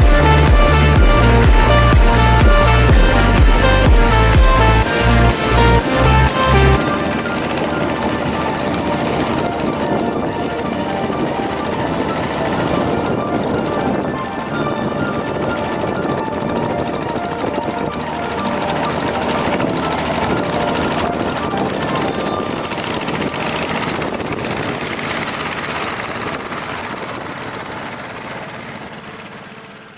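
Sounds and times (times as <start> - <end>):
music playing: 0.0 - 25.8
diesel engine chugging: 0.0 - 29.9.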